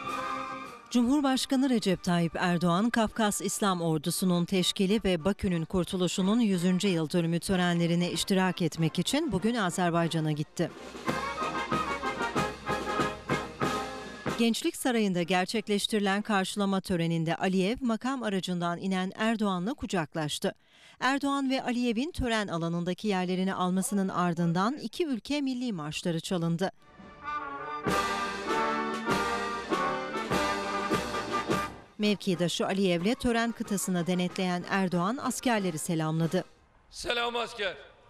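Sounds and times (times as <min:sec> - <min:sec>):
military brass band playing: 0:00.0 - 0:00.9, 0:10.7 - 0:14.4, 0:26.9 - 0:31.9.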